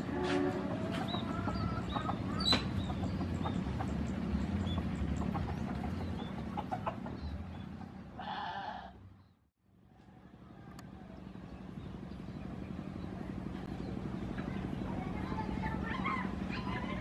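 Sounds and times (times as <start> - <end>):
high-pitched train call: 0.0 - 1.9
train rumble and hum: 0.0 - 8.2, 10.0 - 17.0.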